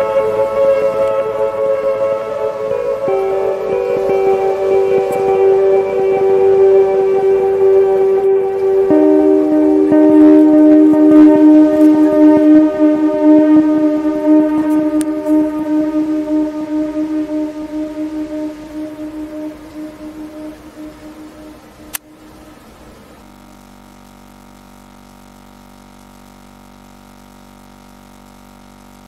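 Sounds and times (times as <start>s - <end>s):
sustained droning tone: 0.0s - 25.4s
faint steady hum: 0.0s - 29.0s.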